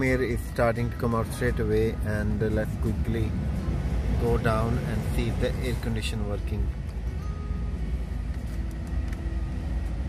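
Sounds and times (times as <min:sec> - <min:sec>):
car engine low rumble: 0:00.0 - 0:10.0
climate control fan blowing: 0:00.0 - 0:10.0.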